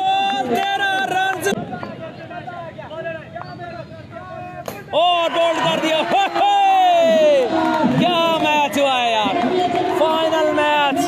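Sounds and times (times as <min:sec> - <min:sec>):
crowd babble: 0:00.0 - 0:11.0
excited commentary: 0:00.0 - 0:11.0.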